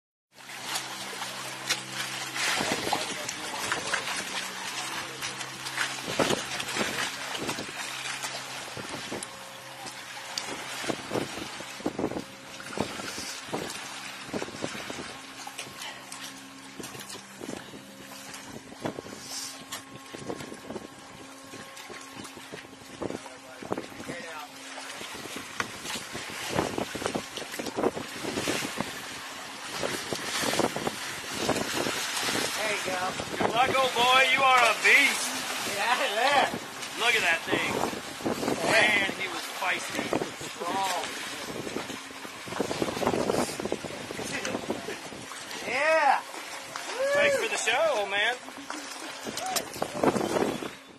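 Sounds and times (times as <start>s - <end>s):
water splashing: 0.3s - 50.8s.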